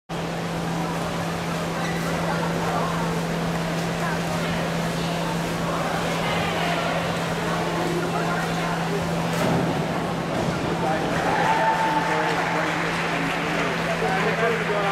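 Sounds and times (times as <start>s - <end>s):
crowd chatter: 0.1s - 14.9s
ventilation hum: 0.1s - 14.9s.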